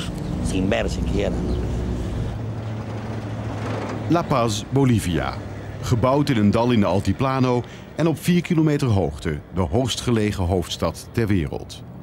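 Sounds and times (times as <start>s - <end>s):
airliner engines droning: 0.0s - 12.0s.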